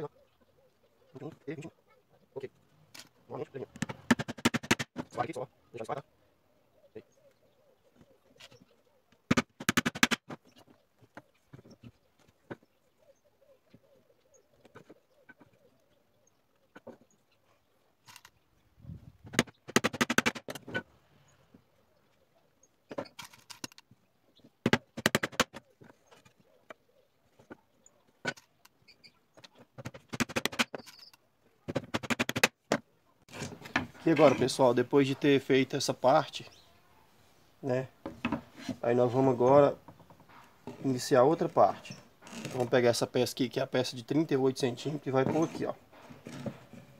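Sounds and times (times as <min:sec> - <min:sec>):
wooden slats knocking and clattering: 0:03.8 - 0:05.2, 0:19.2 - 0:20.8, 0:24.6 - 0:26.3, 0:29.4 - 0:31.0, 0:31.7 - 0:32.8.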